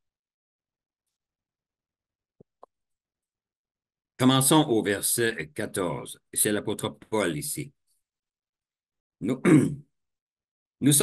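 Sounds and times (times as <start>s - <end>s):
man clearing throat: 9.3s - 9.9s.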